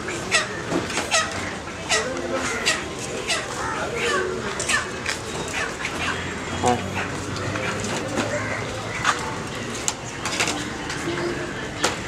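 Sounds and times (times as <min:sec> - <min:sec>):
people talking: 0:00.0 - 0:12.0
chickens squawking: 0:00.1 - 0:09.3.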